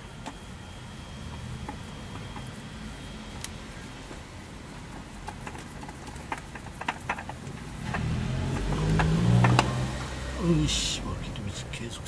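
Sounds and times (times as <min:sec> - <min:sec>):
low steady hum: 0:00.0 - 0:12.0
light clicks and knocks: 0:04.9 - 0:10.1.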